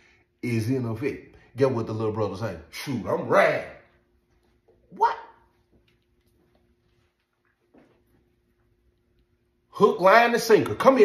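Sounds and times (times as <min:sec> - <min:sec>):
faint steady hum: 0:00.0 - 0:11.0
man talking: 0:00.4 - 0:04.0, 0:09.7 - 0:11.0.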